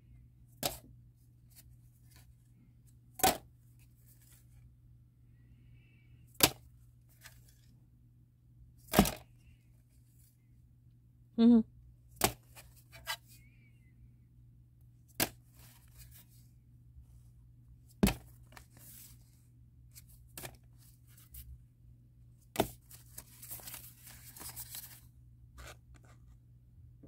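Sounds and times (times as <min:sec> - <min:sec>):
paper sleeves rustling: 0:03.7 - 0:04.6, 0:18.2 - 0:21.5, 0:22.6 - 0:26.4.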